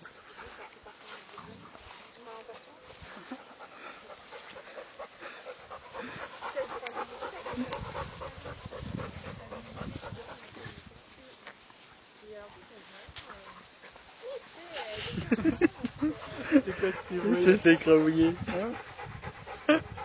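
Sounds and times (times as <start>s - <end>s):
dog panting: 0.0s - 10.9s, 12.5s - 20.0s.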